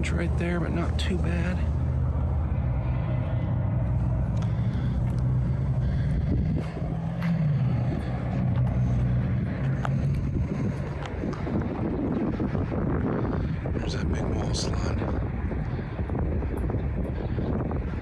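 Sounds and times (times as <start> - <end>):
vehicle engine idling: 0.0 - 18.0.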